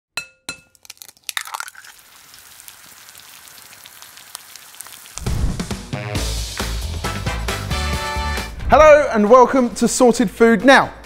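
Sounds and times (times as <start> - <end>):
cracks and crackling hiss: 0.8 - 5.3.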